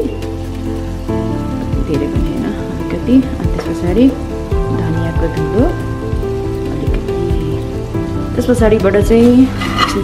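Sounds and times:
background music of held notes: 0:00.0 - 0:10.0
sauce sizzling in a pan: 0:00.0 - 0:10.0.

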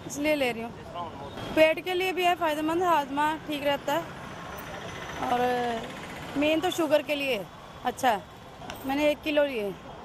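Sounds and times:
street traffic noise: 0:00.0 - 0:10.0.

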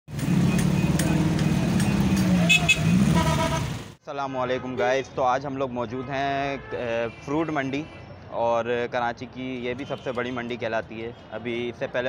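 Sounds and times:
motorcycle and car engines: 0:00.1 - 0:04.0
short horn toot: 0:02.4 - 0:03.8.

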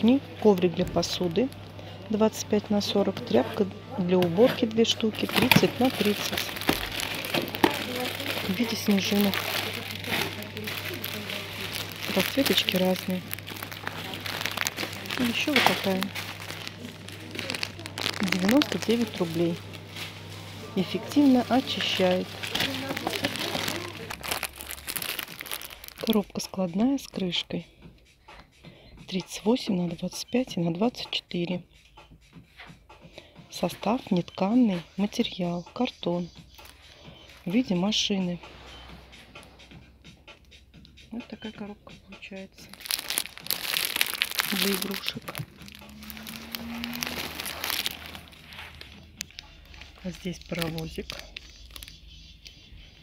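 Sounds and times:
plastic packaging crinkling: 0:04.5 - 0:26.5, 0:42.6 - 0:52.1.

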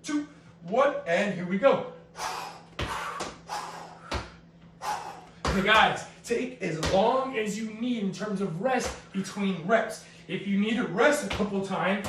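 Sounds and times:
feet landing on tiled floor: 0:02.7 - 0:03.4, 0:04.0 - 0:04.4, 0:05.3 - 0:05.9.

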